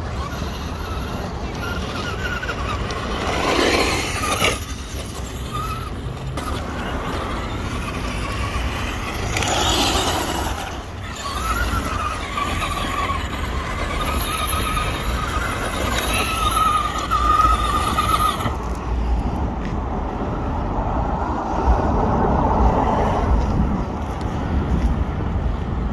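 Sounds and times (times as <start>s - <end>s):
rc truck motor whine: 0.0s - 19.3s.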